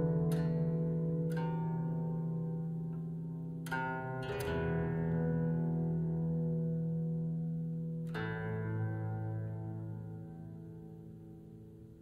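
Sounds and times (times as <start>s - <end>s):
plucked zither notes: 0.0s - 11.4s.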